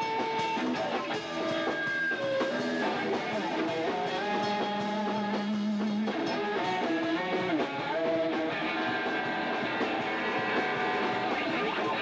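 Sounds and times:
distorted electric guitar: 0.0 - 12.0
rock band playing: 0.0 - 12.0.

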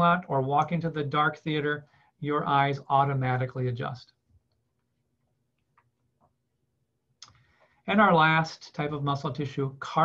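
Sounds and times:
person speaking: 0.0 - 4.3, 7.2 - 10.0.

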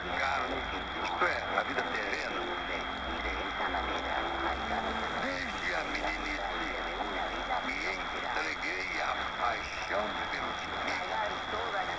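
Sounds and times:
steady high tone: 0.0 - 11.6
faint voice talking on radio: 0.0 - 11.9
radio static hiss: 0.0 - 11.9.

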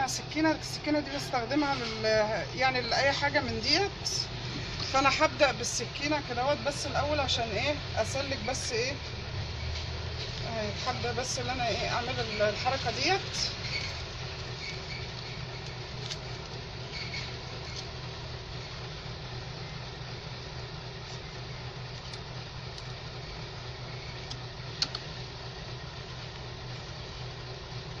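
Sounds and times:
steady low hum: 0.0 - 28.0.

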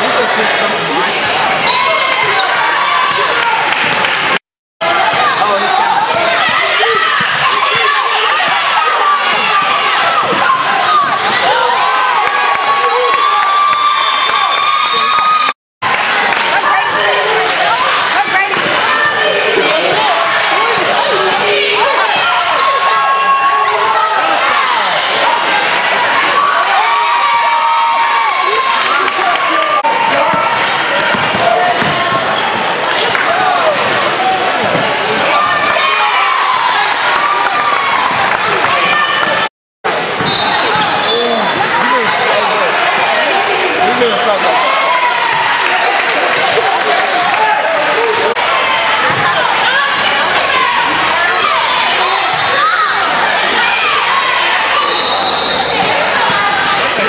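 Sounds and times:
murmur of voices: 0.0 - 13.6, 16.0 - 57.0.

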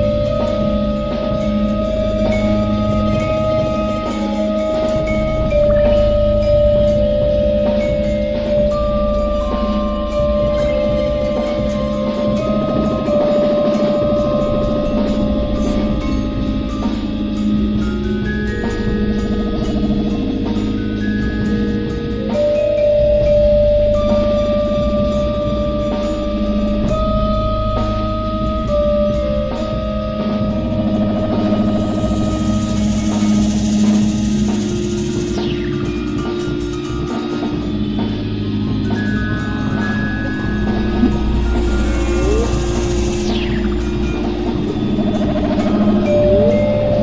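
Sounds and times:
electronic music drone: 0.0 - 47.0
electronic drone tones: 30.6 - 36.2, 37.7 - 47.0
low buzzing rumble: 37.6 - 47.0
fast fluttering texture: 39.3 - 47.0.

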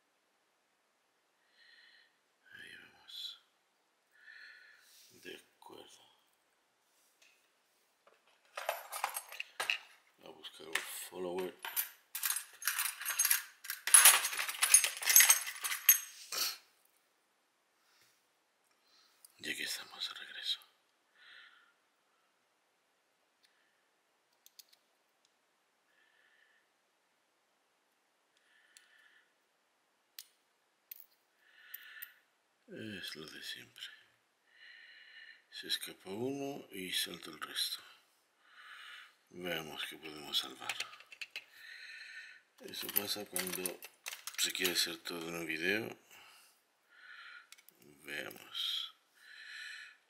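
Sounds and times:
small metal parts clinking: 8.2 - 10.0, 10.6 - 16.2, 30.9 - 32.2, 40.5 - 41.5, 42.6 - 45.3.

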